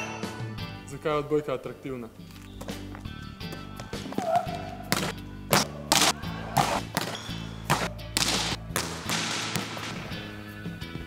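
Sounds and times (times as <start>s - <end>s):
background music: 0.0s - 11.0s
volleyball smacks: 3.5s - 10.3s.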